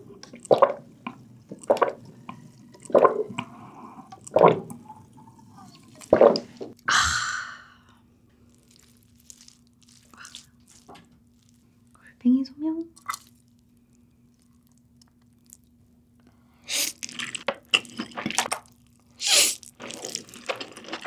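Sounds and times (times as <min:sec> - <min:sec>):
person gulping a drink: 0:00.2 - 0:06.9, 0:08.5 - 0:11.1, 0:13.0 - 0:13.6, 0:16.7 - 0:21.0.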